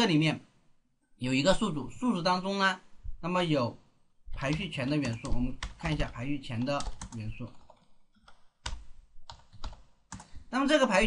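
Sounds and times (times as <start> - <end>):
computer keyboard keystrokes: 4.4 - 10.4.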